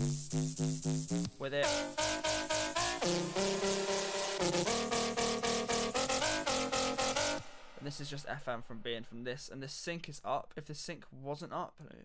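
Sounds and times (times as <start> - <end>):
gritty synth bass riff: 0.0 - 8.1.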